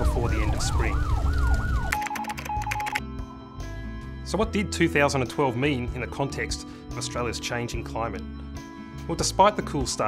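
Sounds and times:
fire truck siren yelping: 0.0s - 2.8s.

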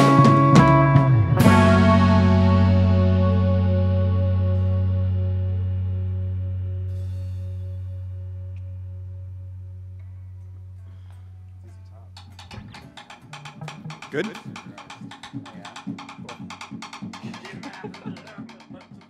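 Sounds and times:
electric guitar and bass chord ringing: 0.0s - 10.5s.

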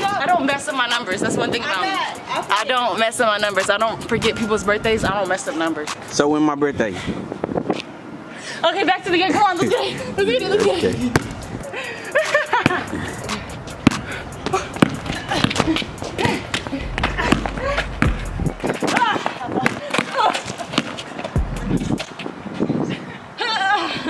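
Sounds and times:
voices: 0.0s - 7.0s, 8.5s - 17.9s, 18.7s - 24.0s
background music: 9.5s - 19.0s
sneakers scuffing: 10.6s - 11.5s, 12.2s - 22.7s
basketball bouncing on hard court: 11.1s - 11.4s, 13.8s - 21.0s.

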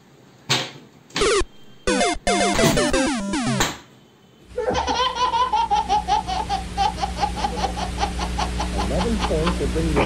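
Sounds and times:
baby laughing: 4.6s - 9.6s.

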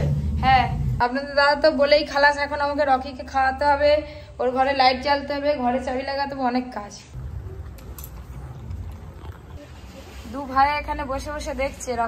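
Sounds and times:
dog crunching kibble from metal bowl: 7.2s - 9.6s.

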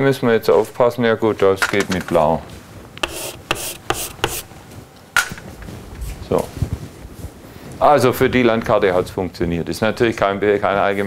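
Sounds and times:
chalk scratching on blackboard: 3.0s - 4.5s.

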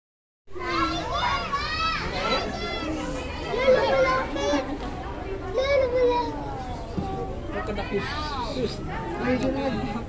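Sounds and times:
children talking excitedly: 0.5s - 10.0s.

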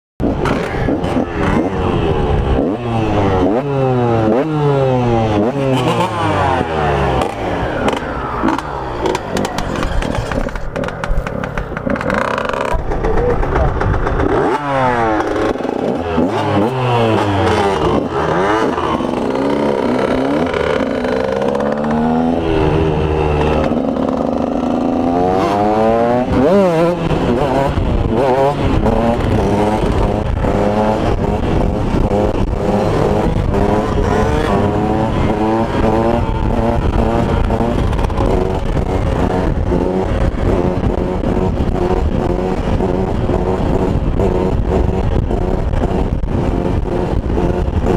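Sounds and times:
motorcycle engine revving: 0.2s - 47.9s.

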